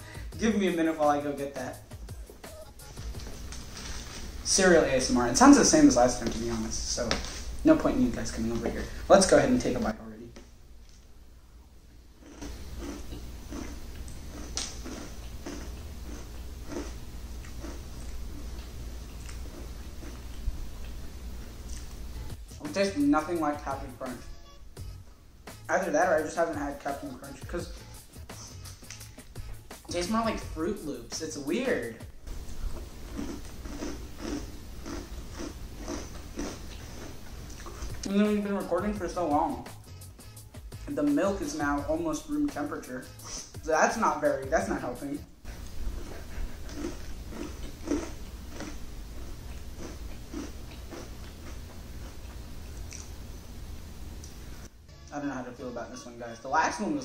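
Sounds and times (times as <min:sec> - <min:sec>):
person chewing crunchy cereal: 0:02.8 - 0:04.5, 0:12.2 - 0:21.0, 0:32.3 - 0:38.1, 0:45.4 - 0:53.2.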